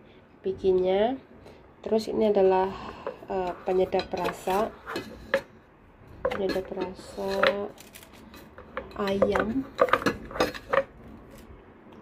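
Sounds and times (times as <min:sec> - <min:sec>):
kitchen containers and utensils clinking: 0:02.9 - 0:05.5, 0:06.1 - 0:11.5.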